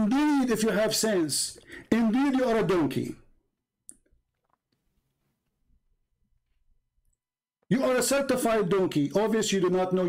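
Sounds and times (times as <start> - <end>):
man speaking: 0.0 - 3.3, 7.7 - 10.0.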